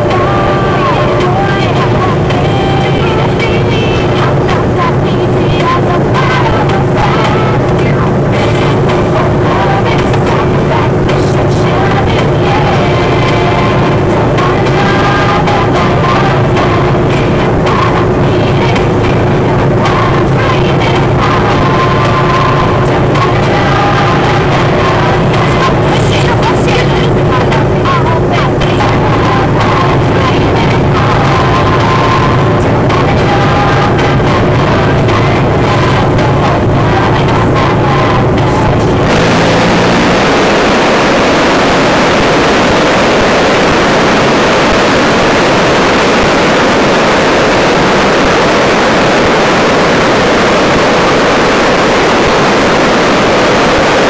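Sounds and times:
voices: 0.0s - 54.0s
river rushing: 38.9s - 54.0s.

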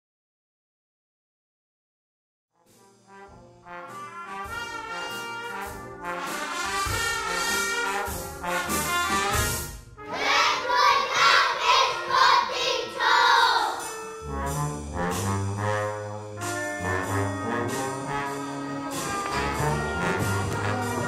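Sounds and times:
brass band music: 2.6s - 21.0s
children's voices chorus: 10.1s - 13.9s.

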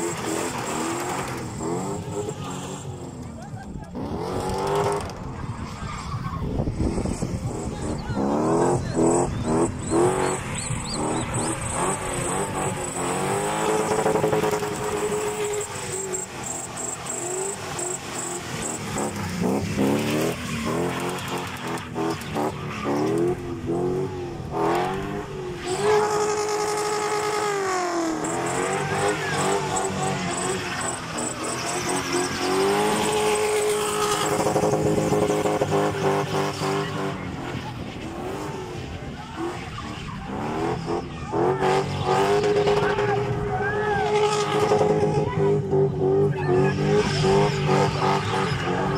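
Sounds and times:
car engine revving hard: 0.0s - 3.2s, 3.9s - 5.3s, 6.8s - 48.9s
tyres squealing on tarmac: 7.5s - 48.9s.

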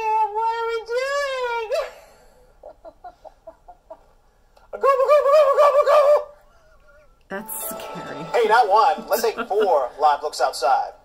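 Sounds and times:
woman giggling: 9.0s - 9.8s.

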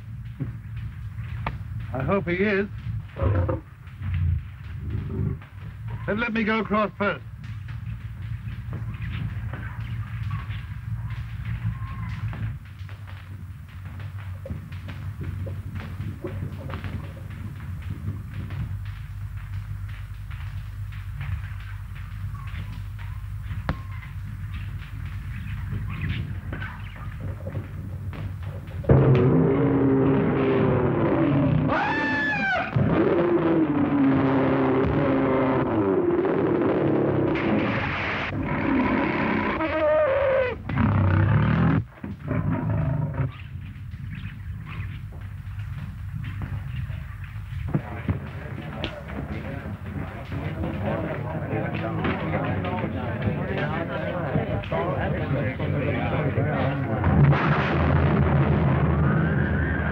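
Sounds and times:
film soundtrack hum and hiss: 0.0s - 59.9s
big cat roaring and snarling: 28.9s - 43.3s.

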